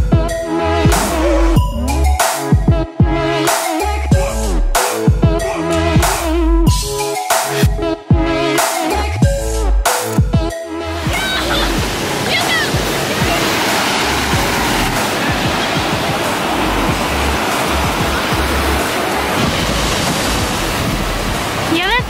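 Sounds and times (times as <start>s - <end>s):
background music bass line: 0.0s - 12.0s, 14.0s - 22.0s
waves breaking on sand: 11.1s - 22.0s.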